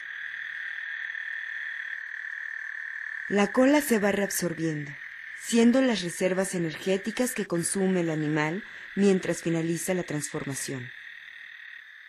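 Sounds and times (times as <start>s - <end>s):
frogs calling in chorus: 0.0s - 12.0s.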